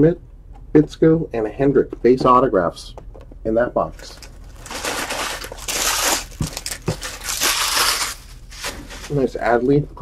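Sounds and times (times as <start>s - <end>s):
cardboard and wrapping tearing: 4.1s - 9.2s.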